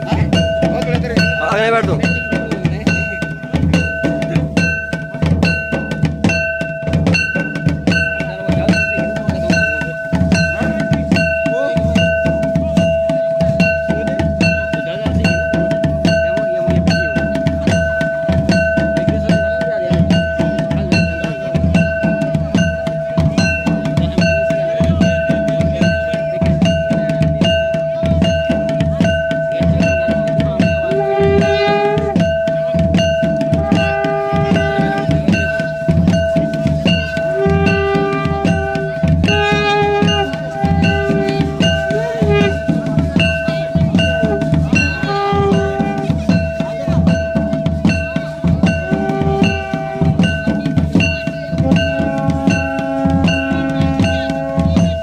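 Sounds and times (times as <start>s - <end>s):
drums beating steady rhythm: 0.0s - 55.0s
held high note: 0.0s - 55.0s.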